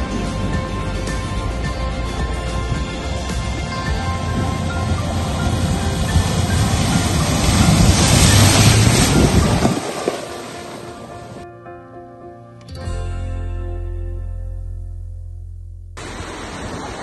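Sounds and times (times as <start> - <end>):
water splashing from car: 0.0 - 11.4, 16.0 - 17.0
background music: 0.0 - 15.7.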